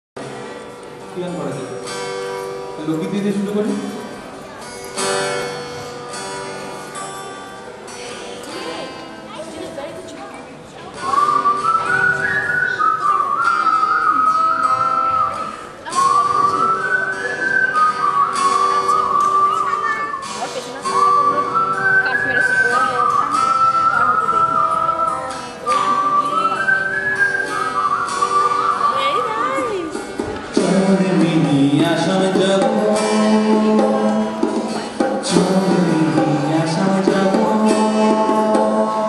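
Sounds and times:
soft acoustic guitar: 0.2 - 39.0
whistled melody: 11.0 - 29.7.

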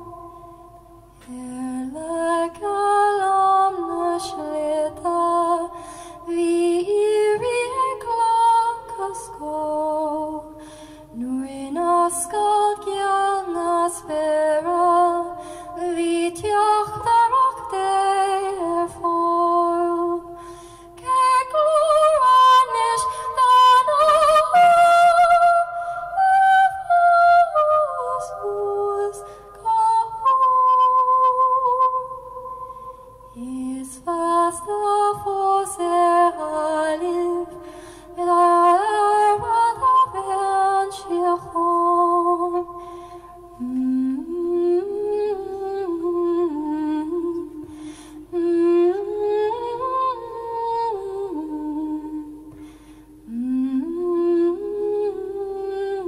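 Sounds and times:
woman singing unaccompanied: 1.2 - 32.6, 33.3 - 52.5, 53.3 - 56.0.

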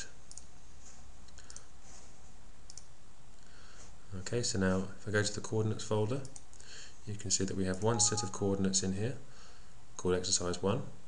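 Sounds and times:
faint mouse clicks: 0.0 - 0.5, 1.2 - 1.7, 2.7 - 3.0, 6.2 - 6.7
low background hum: 0.0 - 11.0.

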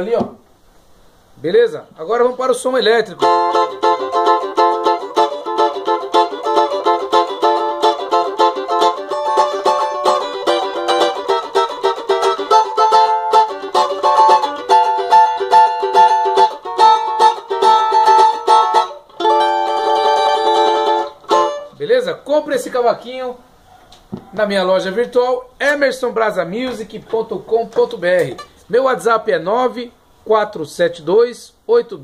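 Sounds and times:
electric cavaquinho strumming chords: 3.2 - 21.8.

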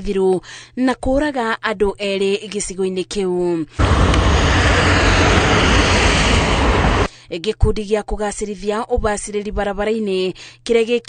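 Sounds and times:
loud rushing roar: 3.8 - 7.1.

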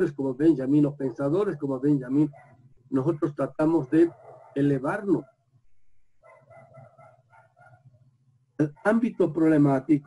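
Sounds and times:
faint animal calls: 2.2 - 5.2, 6.2 - 7.9.

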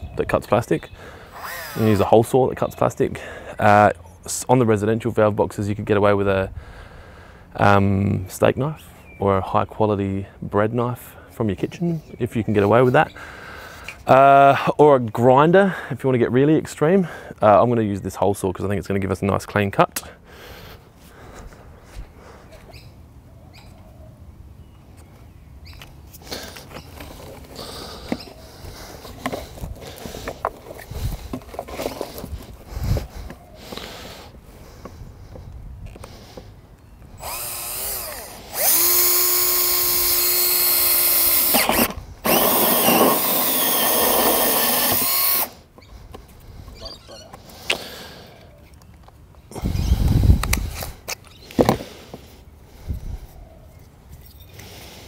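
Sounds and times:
cordless drill cutting plastic: 1.3 - 2.1, 37.2 - 45.6.

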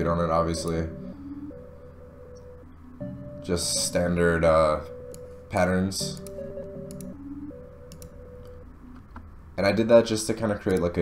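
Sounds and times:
soft synth melody: 0.0 - 9.5.

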